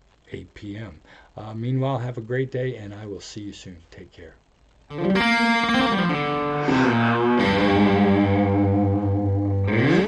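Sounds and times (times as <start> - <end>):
distorted electric guitar chord: 4.9 - 10.0.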